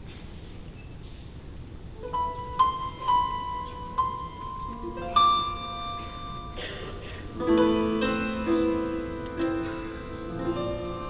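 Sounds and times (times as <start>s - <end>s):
piano notes ringing: 2.0s - 11.0s.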